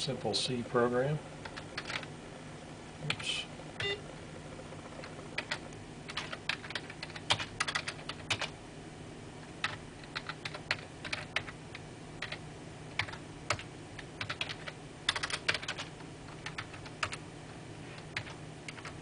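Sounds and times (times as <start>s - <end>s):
typing on computer keyboard: 1.4s - 2.1s, 5.0s - 8.5s, 9.6s - 17.2s, 18.2s - 19.0s.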